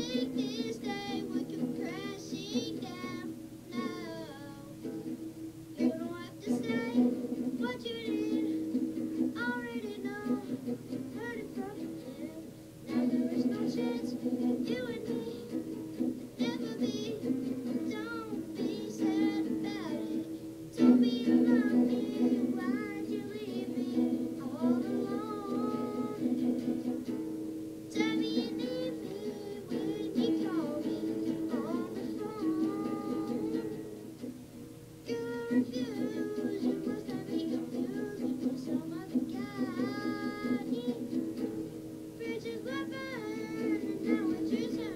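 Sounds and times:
boy singing pop ballad: 0.0s - 5.1s, 5.8s - 8.6s, 9.3s - 15.7s, 16.4s - 26.4s, 27.9s - 33.9s, 35.1s - 41.2s, 42.2s - 44.9s
strummed acoustic guitar chords: 0.0s - 44.9s.

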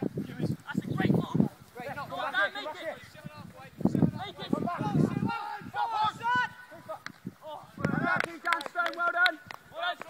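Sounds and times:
people shouting: 4.2s - 7.0s.

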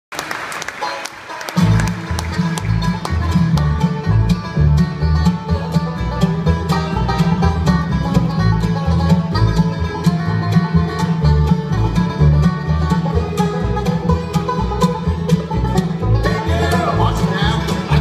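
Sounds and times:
acoustic guitar: 0.8s - 18.0s
banjo picking: 0.8s - 18.0s
fiddle: 0.8s - 18.0s
mandolin: 0.8s - 18.0s
upright bass: 1.6s - 18.0s.

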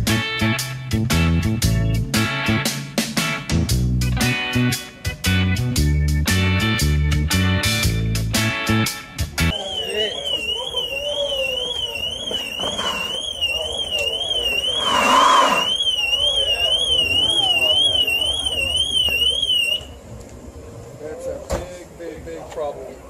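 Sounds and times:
faint voices: 9.5s - 23.0s
electronic alarm siren warbling: 9.9s - 16.5s.

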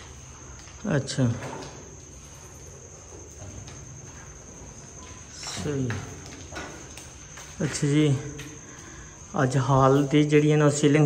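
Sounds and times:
man speaking: 0.8s - 1.6s, 5.3s - 6.2s, 7.6s - 8.5s, 9.3s - 11.0s.

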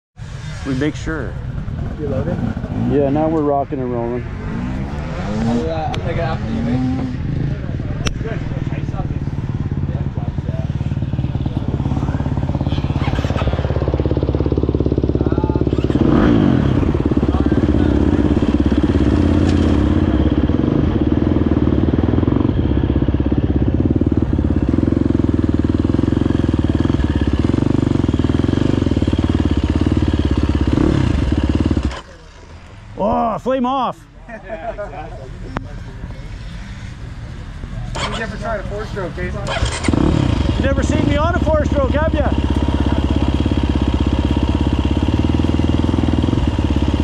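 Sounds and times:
motorcycle engine idling: 6.8s - 33.2s, 35.6s - 47.0s.

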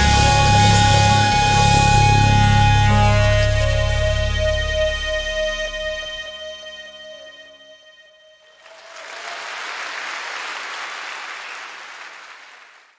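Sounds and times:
live band held chord: 0.0s - 6.4s
audience applause: 8.6s - 12.9s.

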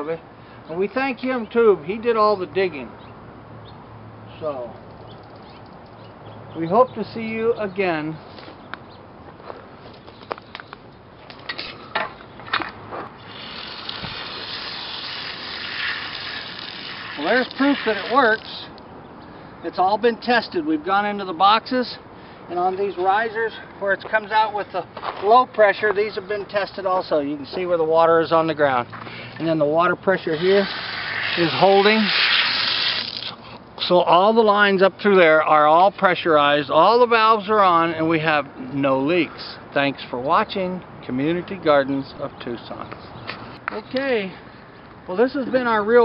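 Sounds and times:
sharp clicks: 4.8s - 6.0s
water spraying under pressure: 13.2s - 18.6s, 30.2s - 33.4s.

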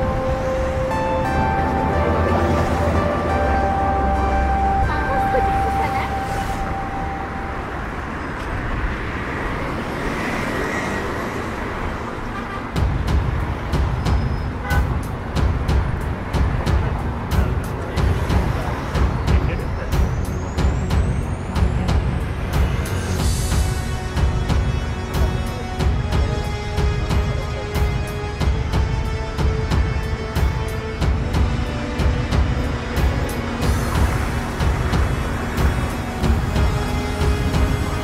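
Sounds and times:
rising whine: 0.0s - 9.7s
cars passing on street: 0.0s - 38.0s
people's voices: 1.3s - 7.2s.

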